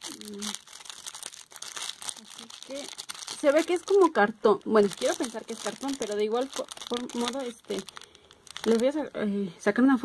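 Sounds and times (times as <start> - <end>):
plastic wrapping crinkling: 0.0 - 9.3.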